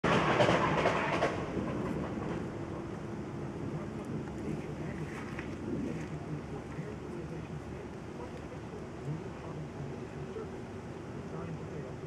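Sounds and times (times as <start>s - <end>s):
noisy outdoor rumble: 0.0s - 12.0s.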